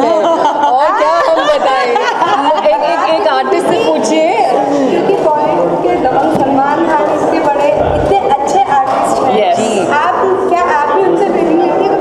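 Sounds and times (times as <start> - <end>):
several people talking: 0.0 - 12.0.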